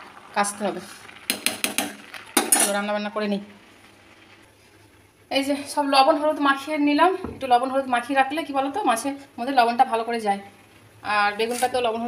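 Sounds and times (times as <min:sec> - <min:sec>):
metal spoon scraping a pot: 0:11.4 - 0:11.8.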